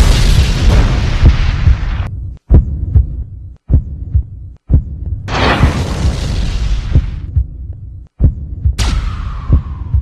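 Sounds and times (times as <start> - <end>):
heartbeat-like thumps: 0.0 - 10.0.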